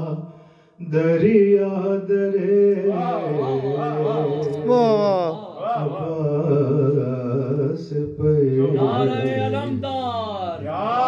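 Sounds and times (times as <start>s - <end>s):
man chanting into a microphone: 0.0s - 9.8s.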